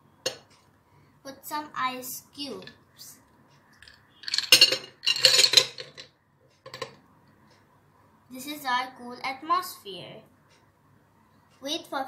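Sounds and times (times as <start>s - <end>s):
ice cubes clinking on glass plate: 3.8s - 6.1s.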